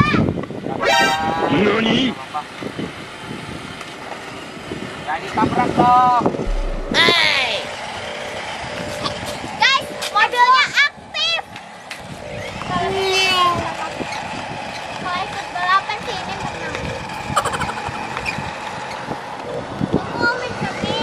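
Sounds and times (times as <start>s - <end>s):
steady whine: 6.4s - 7.6s.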